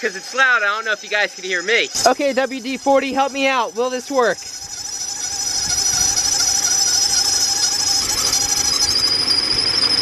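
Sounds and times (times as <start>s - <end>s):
engine belt squealing: 0.0s - 10.0s.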